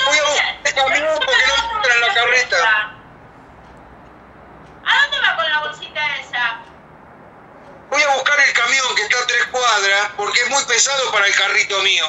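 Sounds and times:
woman speaking: 0:00.0 - 0:03.0, 0:04.8 - 0:06.7.

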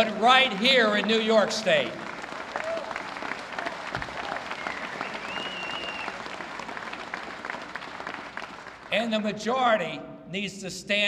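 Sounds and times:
audience applauding: 0:00.0 - 0:08.9.

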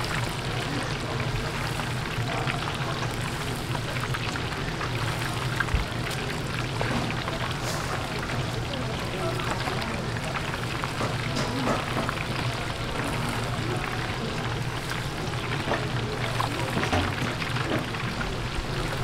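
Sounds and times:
deep-fryer oil bubbling: 0:00.0 - 0:19.0.

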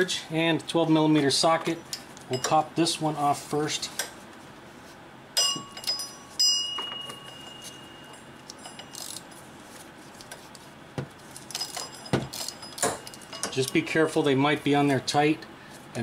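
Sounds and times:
ratchet clinking against metal: 0:05.4 - 0:09.4, 0:11.4 - 0:13.9.

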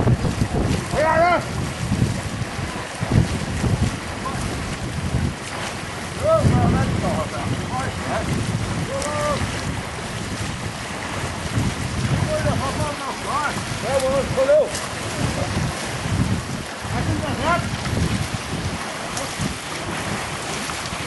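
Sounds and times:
wind buffeting microphone: 0:00.0 - 0:21.0
distant voices calling out: 0:06.2 - 0:09.6.

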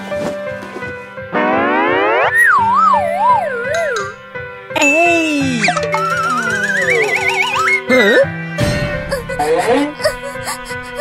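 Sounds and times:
light background music: 0:00.0 - 0:11.0
cartoon pitch sweep and wobble: 0:01.4 - 0:04.1, 0:05.6 - 0:08.0.

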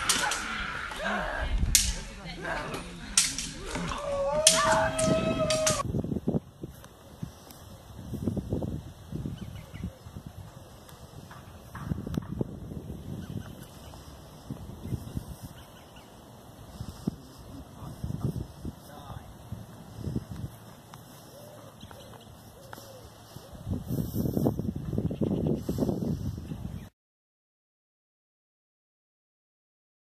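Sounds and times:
people shouting: 0:00.0 - 0:05.8
sharp clatters: 0:00.0 - 0:05.8
wind buffeting microphone: 0:00.0 - 0:26.9.

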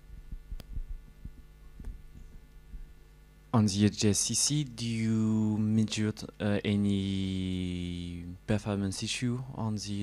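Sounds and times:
electrical hum: 0:00.0 - 0:10.0
microphone handling thumps: 0:00.1 - 0:03.0
microphone click: 0:00.3 - 0:02.9.

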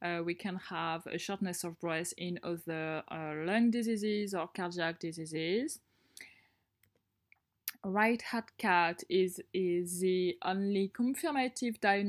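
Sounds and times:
woman speaking: 0:00.0 - 0:05.8, 0:07.7 - 0:12.0.

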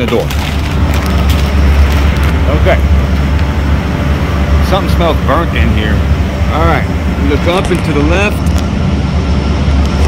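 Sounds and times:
freezer fans running: 0:00.0 - 0:10.0.

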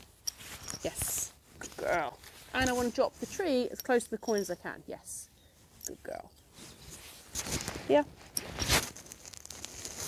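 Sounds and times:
clothing rustle: 0:00.0 - 0:04.6, 0:05.4 - 0:10.0.

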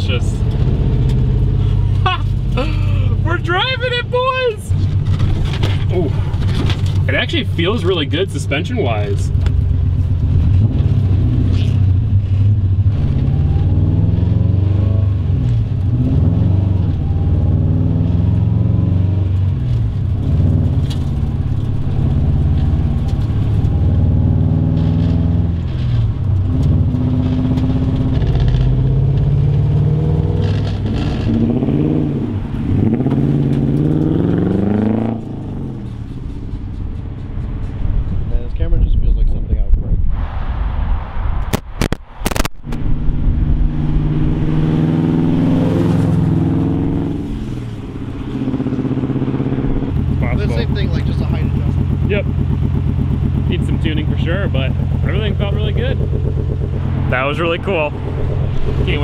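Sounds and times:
straight-piped engine revving: 0:10.2 - 0:36.0, 0:43.4 - 0:59.0.

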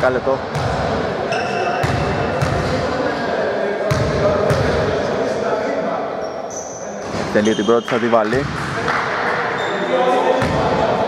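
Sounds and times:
echoing murmur of voices: 0:00.0 - 0:11.0.

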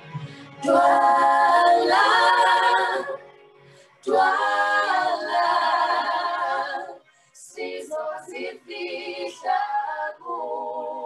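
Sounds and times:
women singing a cappella: 0:00.6 - 0:03.3, 0:04.0 - 0:11.0.

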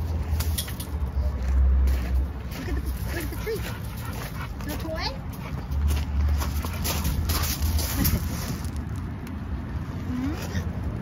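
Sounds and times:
footsteps on gravel: 0:01.3 - 0:09.0.

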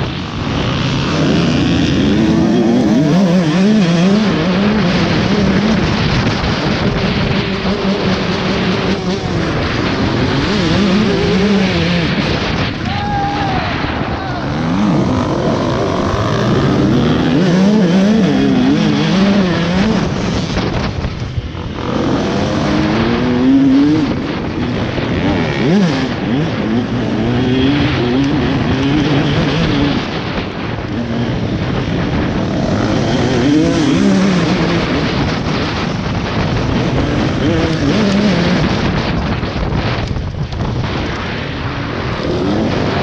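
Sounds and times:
dirt bike engine revving: 0:00.0 - 0:40.0.

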